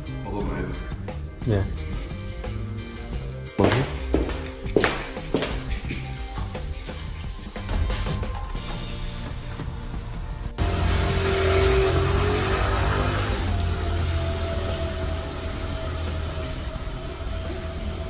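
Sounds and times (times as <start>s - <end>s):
music: 0.0s - 18.0s
motor scooter engine running: 10.6s - 18.0s.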